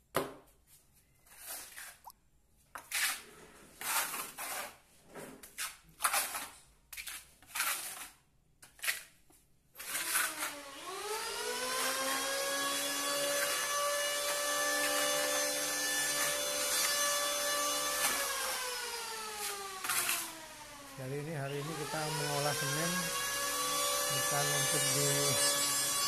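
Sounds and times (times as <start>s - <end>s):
cement scraping on wall: 2.8s - 9.1s, 9.8s - 10.6s, 13.1s - 20.4s.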